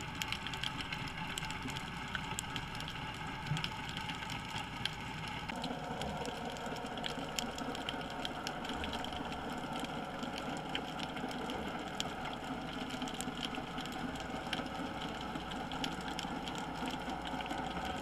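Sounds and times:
sharp clicks and crackles: 0.0 - 18.0
underwater hum and hiss: 0.0 - 18.0.

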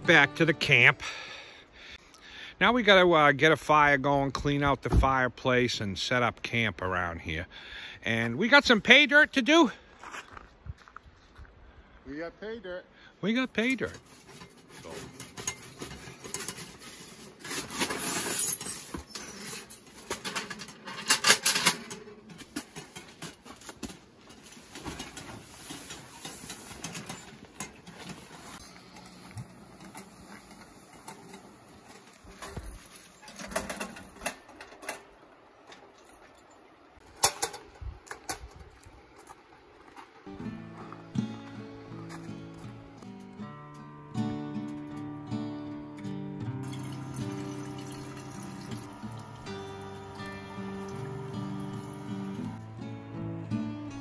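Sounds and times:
background music: 0.0 - 1.6, 40.3 - 54.0
metal clanks and scraping: 13.8 - 36.1, 37.0 - 38.6.

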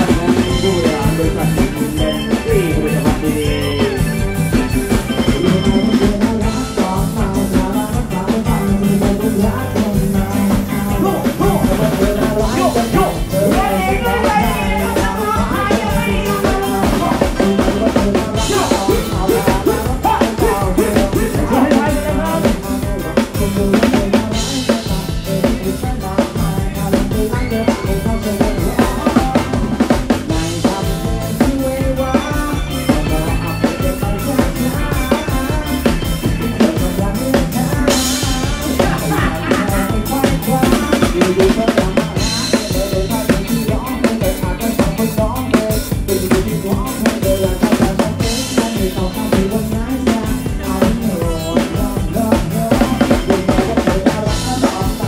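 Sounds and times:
bass drum and snare beat: 0.0 - 55.0
live band music: 0.0 - 55.0.

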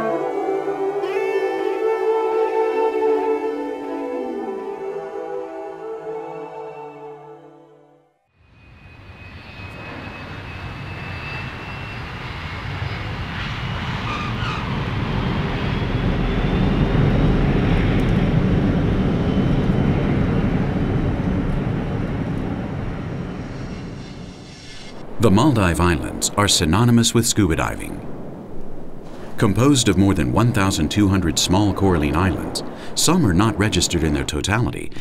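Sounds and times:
music: 0.0 - 8.4
jet engines rushing: 8.4 - 35.0.

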